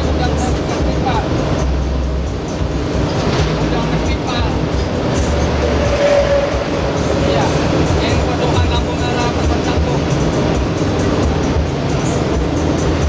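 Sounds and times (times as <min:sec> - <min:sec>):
voices: 0:00.0 - 0:12.7
bus engine drone: 0:00.0 - 0:13.0
music: 0:00.0 - 0:13.0
road noise: 0:00.0 - 0:13.0.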